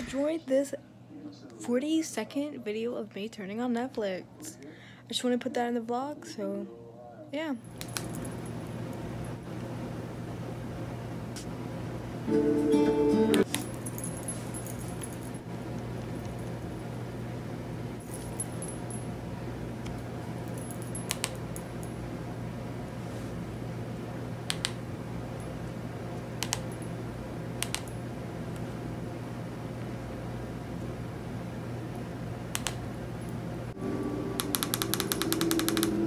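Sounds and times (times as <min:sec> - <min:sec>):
steady low hum: 0:00.0 - 0:36.0
remote control buttons clicking: 0:24.5 - 0:24.8, 0:26.4 - 0:26.7, 0:27.6 - 0:27.9, 0:32.5 - 0:32.8, 0:34.4 - 0:36.0.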